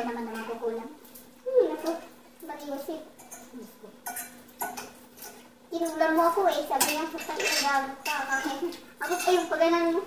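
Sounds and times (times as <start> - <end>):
woman talking: 0.0 - 4.0, 5.7 - 10.0
cutlery clinking on plates: 3.2 - 5.5, 6.8 - 9.5.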